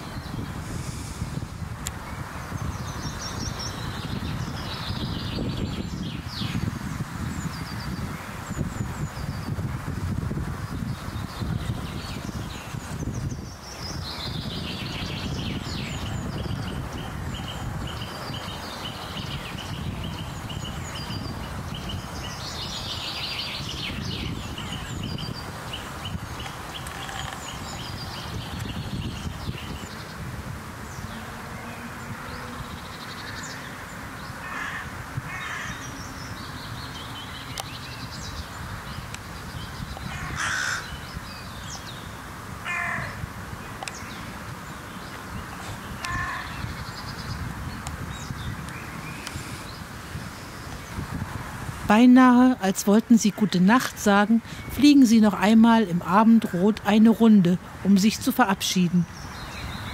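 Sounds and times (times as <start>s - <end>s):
songbird trilling: 10.8s - 30.1s, 43.8s - 51.1s
crows cawing: 34.4s - 35.9s, 40.1s - 41.0s, 42.6s - 43.2s, 46.0s - 46.6s.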